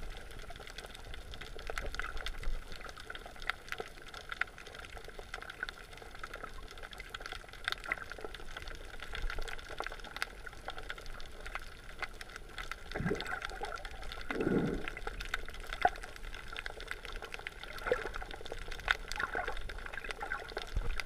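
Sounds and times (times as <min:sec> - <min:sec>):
rumble of moving water: 0:00.0 - 0:21.0
underwater clicking crackle: 0:00.0 - 0:21.0.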